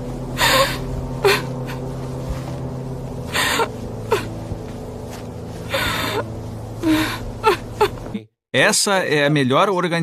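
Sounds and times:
low steady drone: 0.0s - 8.2s
woman sobbing: 0.4s - 2.0s, 3.3s - 4.4s, 5.7s - 8.1s.

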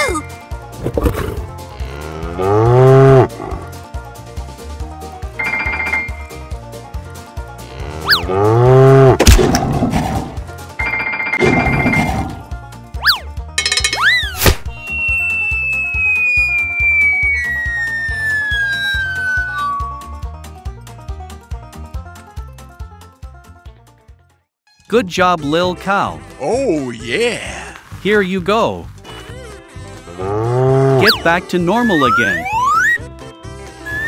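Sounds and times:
cartoon background music: 0.0s - 24.1s, 24.7s - 34.0s
cow moo: 1.7s - 3.6s, 7.6s - 9.2s, 30.1s - 31.1s
falling whistle: 14.1s - 20.3s
high ringing trills: 14.8s - 20.2s.

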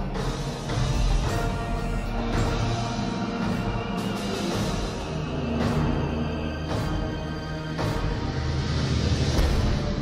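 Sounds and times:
film score music: 0.0s - 10.0s
heavy low thump: 9.4s - 10.0s.

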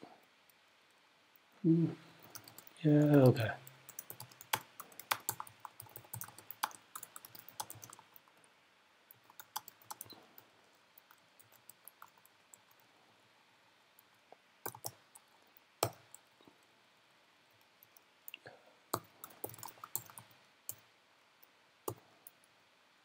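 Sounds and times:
typing on computer keyboard: 2.2s - 8.4s, 9.1s - 10.4s, 11.0s - 12.8s, 14.6s - 16.2s, 18.9s - 20.8s.

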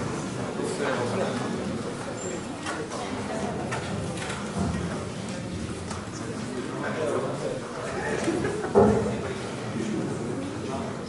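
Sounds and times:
indistinct distant speech echoing: 0.0s - 11.0s.

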